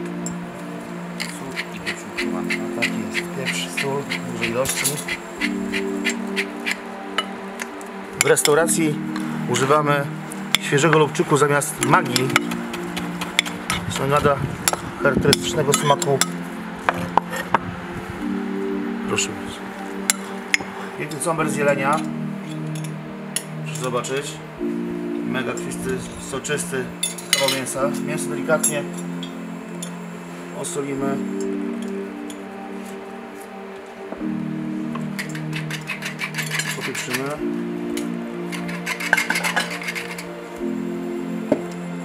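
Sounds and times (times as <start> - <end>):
background music with sustained chords: 0.0 - 42.0
pepper mill grinding: 35.2 - 37.3, 38.5 - 40.3.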